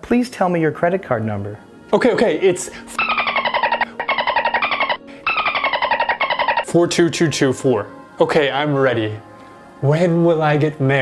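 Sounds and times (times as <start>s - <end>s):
sped-up chattering voice: 3.0s - 6.7s.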